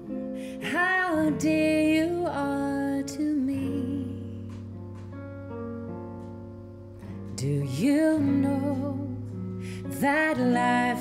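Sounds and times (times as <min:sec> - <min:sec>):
acoustic guitar: 0:00.0 - 0:11.0
woman singing: 0:00.5 - 0:04.6, 0:07.2 - 0:11.0.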